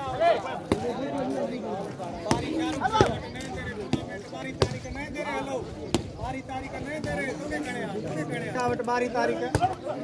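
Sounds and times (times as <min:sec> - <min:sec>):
crowd voices: 0:00.0 - 0:10.0.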